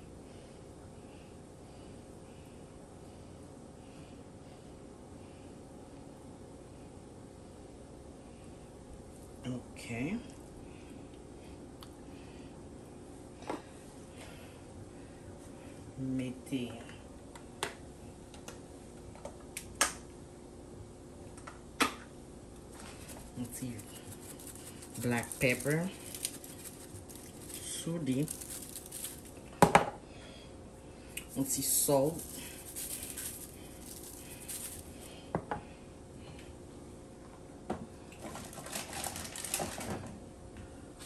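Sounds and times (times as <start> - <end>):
salt shaker shaking: 22.8 - 29.4, 31.2 - 35.2.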